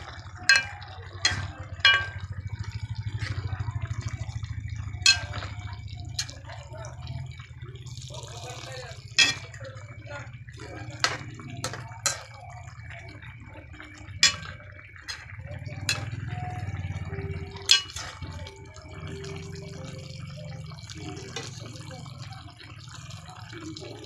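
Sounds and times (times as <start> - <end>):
low steady hum: 0.0 - 24.0
stew sauce bubbling in a pan: 0.0 - 24.0.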